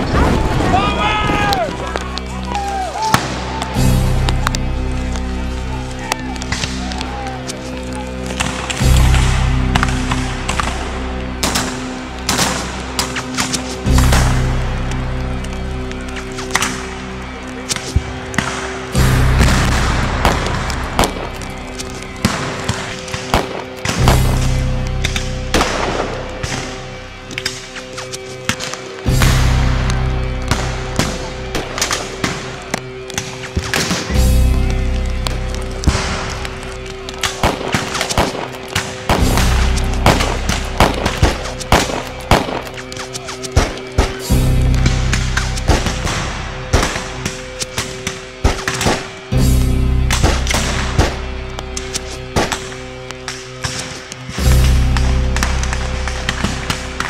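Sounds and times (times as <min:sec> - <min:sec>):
orchestral film score: 0:00.0 - 0:57.0
rifle fire cracks: 0:17.7 - 0:26.7, 0:35.8 - 0:49.2, 0:50.1 - 0:57.0.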